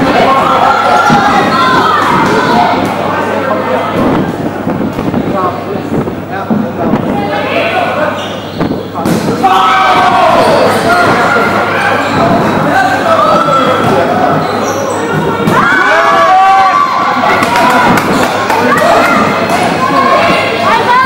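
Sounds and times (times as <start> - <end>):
players shouting: 0.0 - 4.1, 9.0 - 21.0.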